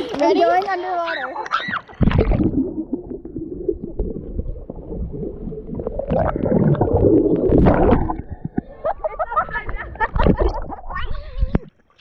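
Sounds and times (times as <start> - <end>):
water splashing: 1.5 - 11.9
underwater gurgling rumble: 2.0 - 11.7.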